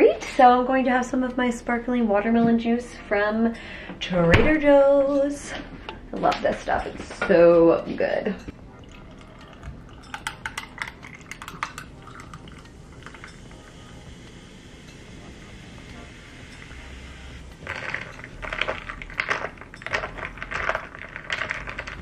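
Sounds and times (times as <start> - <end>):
straw stirring ice: 8.8 - 13.6, 16.6 - 22.0
fizzing drink pouring: 8.8 - 14.9, 17.6 - 22.0
ice cubes clinking in glass: 9.0 - 13.5, 17.6 - 22.0.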